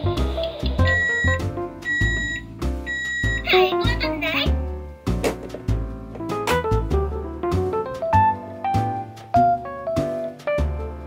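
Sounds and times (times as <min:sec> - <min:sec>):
background music: 0:00.0 - 0:11.0
toy oven beeping: 0:00.7 - 0:03.6.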